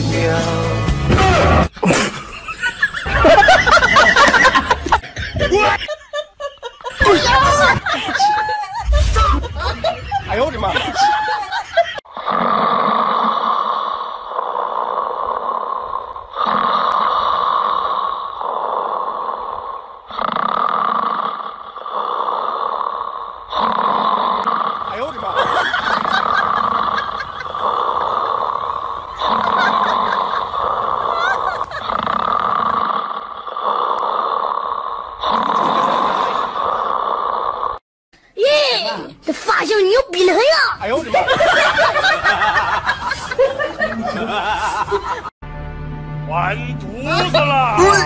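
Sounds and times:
man snoring through loudspeaker: 12.2s - 37.8s.

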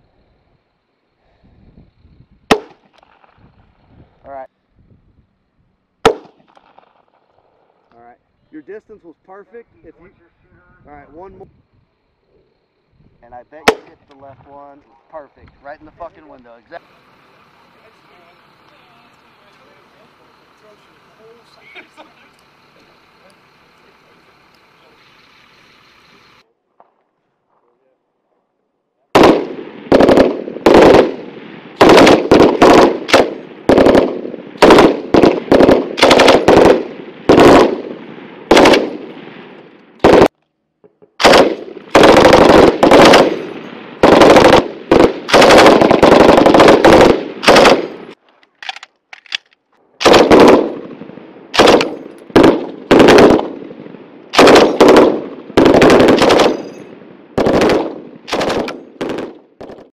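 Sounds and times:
machine gun firing bursts: 29.2s - 39.2s, 40.0s - 40.3s, 41.2s - 48.2s, 50.0s - 59.9s.

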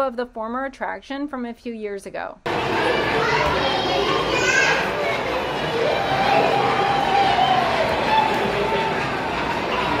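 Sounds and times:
steady background noise: 2.4s - 10.0s
young children playing: 2.5s - 10.0s
high-pitched child voice: 2.9s - 5.4s.

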